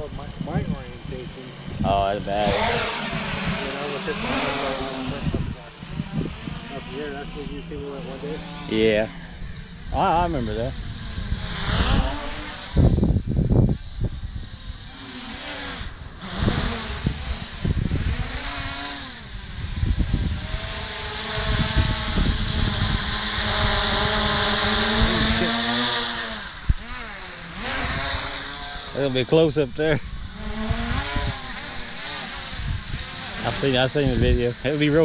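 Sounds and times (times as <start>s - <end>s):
drone propellers whining: 0.0s - 35.0s
wind buffeting microphone: 0.0s - 35.0s.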